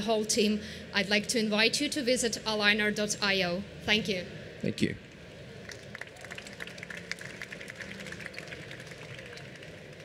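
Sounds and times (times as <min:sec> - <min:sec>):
audience applause: 0:05.7 - 0:10.0.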